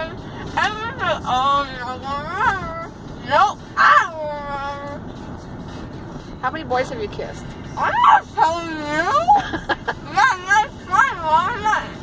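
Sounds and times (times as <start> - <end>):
car road noise: 0.0 - 12.0.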